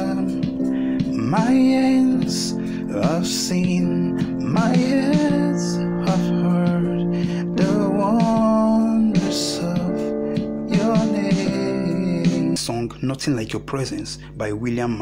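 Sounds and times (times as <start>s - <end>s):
piano playing slow chords: 0.0s - 13.1s
person singing: 0.0s - 13.2s.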